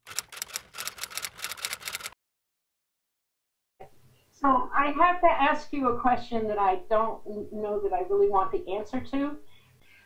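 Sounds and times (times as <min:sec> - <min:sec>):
typewriter key strikes: 0:00.0 - 0:02.2.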